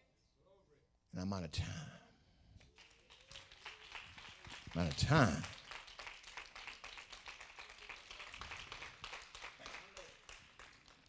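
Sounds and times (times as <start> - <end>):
congregation clapping faintly: 2.6 - 11.0.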